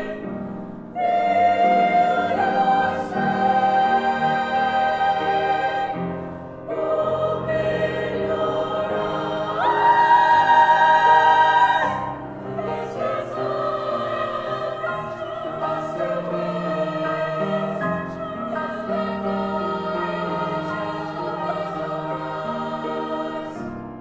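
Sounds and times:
women's choir singing: 0:00.0 - 0:23.8.

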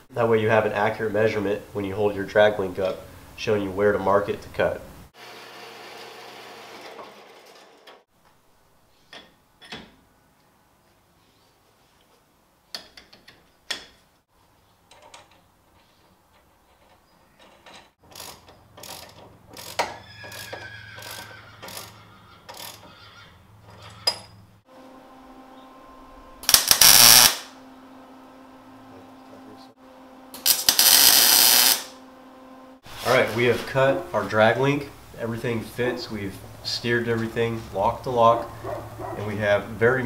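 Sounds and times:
metal clanks and taps: 0:09.1 - 0:10.0, 0:12.7 - 0:14.1, 0:14.9 - 0:20.0, 0:23.6 - 0:24.4
power tool cutting steel: 0:26.4 - 0:27.5, 0:30.4 - 0:32.0
power tool humming: 0:26.4 - 0:27.6, 0:30.3 - 0:32.0.

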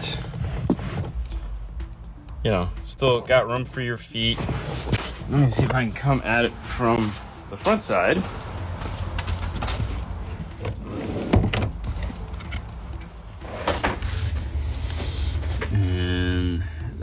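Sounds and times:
rustling and knocks of handling: 0:08.7 - 0:14.6.

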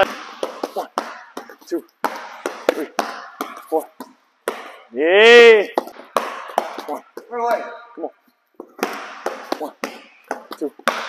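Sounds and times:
basketball bouncing on court: 0:00.0 - 0:04.8, 0:05.7 - 0:07.7, 0:08.6 - 0:11.0.

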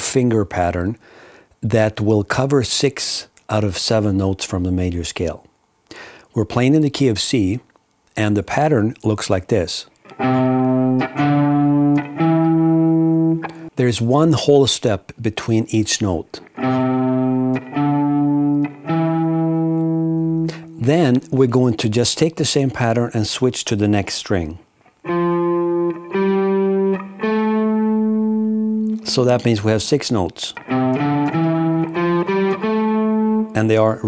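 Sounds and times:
electric guitar picked notes: 0:10.1 - 0:13.7, 0:16.5 - 0:20.8, 0:25.0 - 0:34.0.

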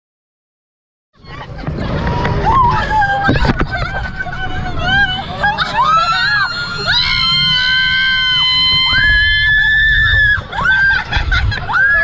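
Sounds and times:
wind rumble on microphone: 0:01.2 - 0:12.0
women laughing: 0:01.2 - 0:12.0
women screaming: 0:01.2 - 0:12.0.

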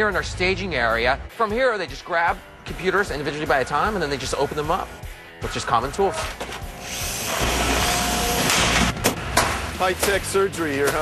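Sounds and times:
power tool running: 0:06.8 - 0:09.0.

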